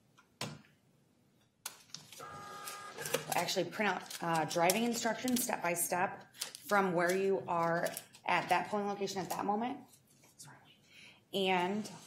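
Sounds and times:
small printer printing: 2.2 - 3.5.

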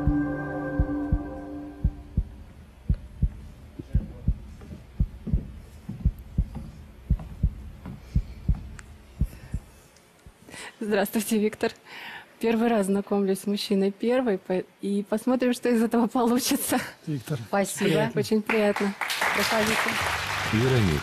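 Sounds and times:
heartbeat thumps: 0.0 - 10.4.

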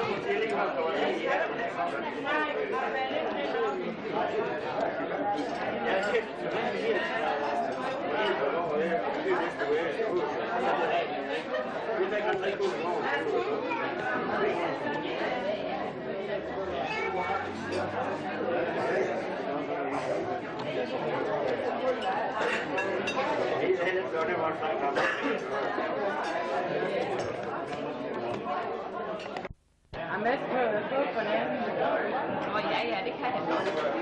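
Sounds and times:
indistinct chatter of many people: 0.0 - 34.0.

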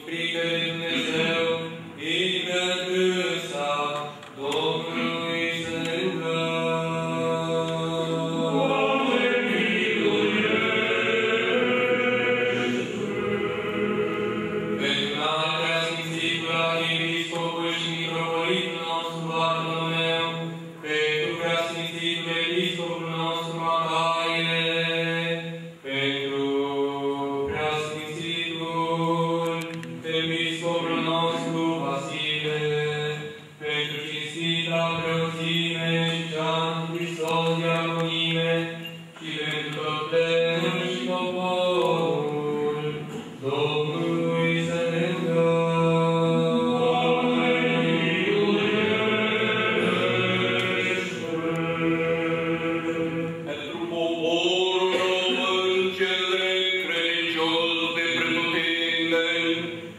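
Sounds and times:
voices chanting: 0.0 - 19.9, 39.2 - 59.8.

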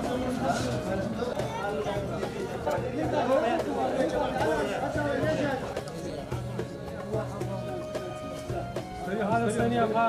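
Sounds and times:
men's voices chattering: 0.0 - 10.0.

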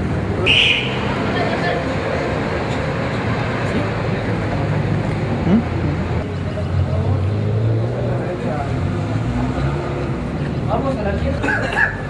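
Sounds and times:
people talking: 0.3 - 9.5, 10.4 - 12.0.

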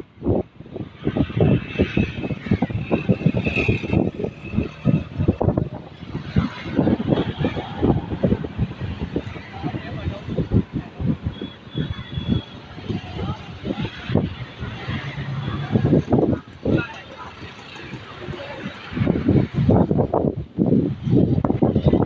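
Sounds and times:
road traffic hum: 0.0 - 22.0
wind buffeting microphone: 0.0 - 22.0.

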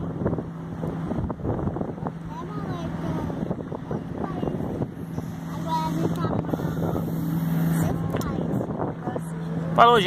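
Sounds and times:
low engine hum: 0.0 - 10.0
wind: 0.0 - 10.0.

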